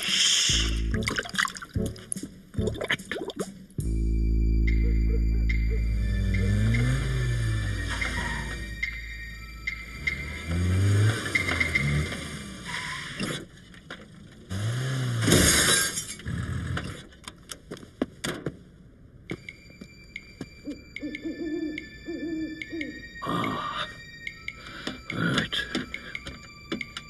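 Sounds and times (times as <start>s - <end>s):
owl hooting: 20.6s - 23.2s.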